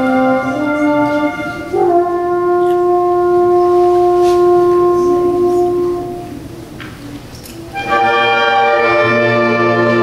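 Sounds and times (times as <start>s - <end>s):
concert band sustained note: 0.0s - 6.6s.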